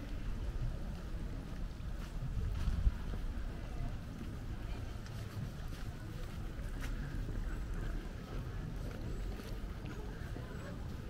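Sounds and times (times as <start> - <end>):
wind buffeting microphone: 0.0 - 6.6.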